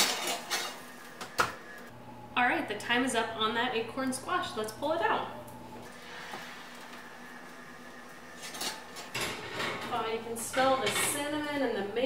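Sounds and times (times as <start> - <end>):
oven door opening: 8.3 - 11.5.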